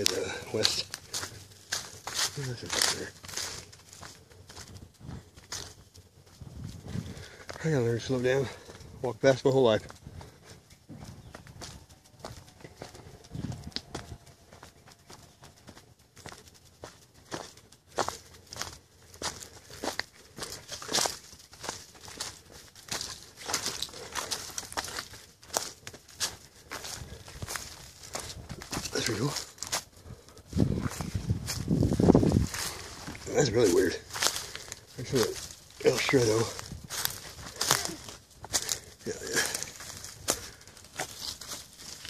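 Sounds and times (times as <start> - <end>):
footsteps crunching dry leaves: 0.0 - 42.0
twigs rustling and snapping: 0.0 - 42.0.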